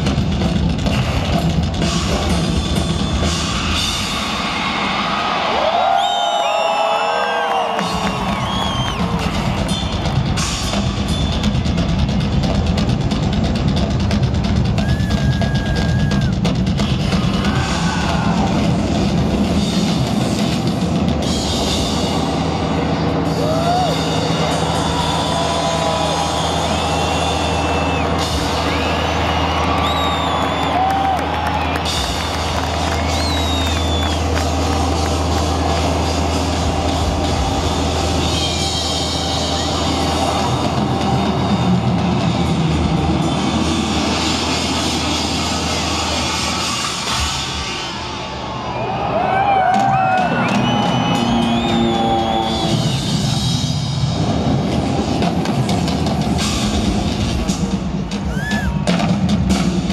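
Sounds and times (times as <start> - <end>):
rock drum solo: 0.0 - 4.8, 7.7 - 26.0
crowd shouting: 4.3 - 10.1, 14.8 - 16.4, 17.2 - 18.8, 23.2 - 37.6.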